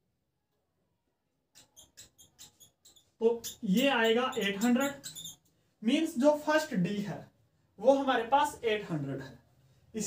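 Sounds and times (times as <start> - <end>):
marker squeaking on whiteboard: 1.5 - 5.6.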